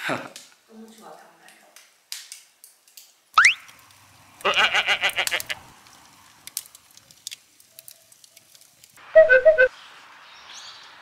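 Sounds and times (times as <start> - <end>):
faint hissy crackles: 0.0 - 9.0
upward sweeping whistle: 9.2 - 9.7.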